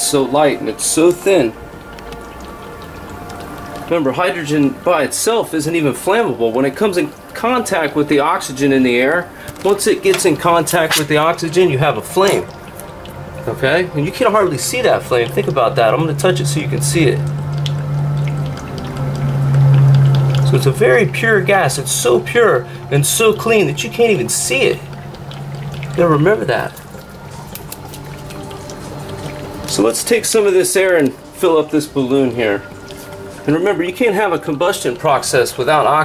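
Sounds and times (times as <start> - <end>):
hydrogen flame humming: 0.0 - 36.0
fizzing hiss with crackles: 0.2 - 5.8, 21.7 - 33.9.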